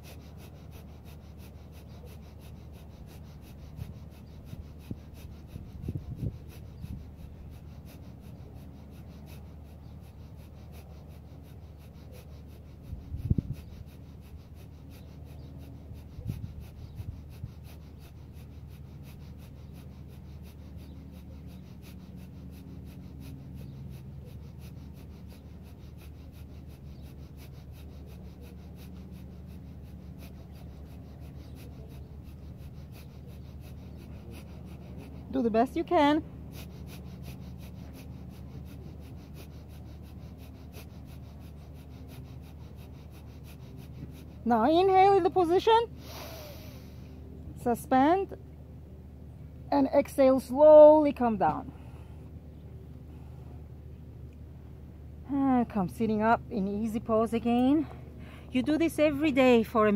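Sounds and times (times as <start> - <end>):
rapid forceful nasal exhales: 0.0 - 48.4
steady low hum: 0.0 - 59.9.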